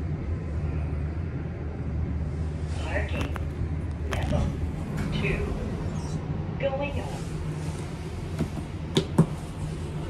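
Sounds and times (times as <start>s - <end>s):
elevator low hum: 0.0s - 10.0s.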